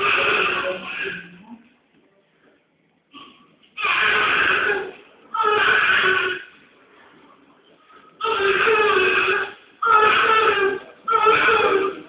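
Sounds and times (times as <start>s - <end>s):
newborn baby crying: 0.0s - 1.3s, 3.8s - 6.6s, 8.2s - 12.0s.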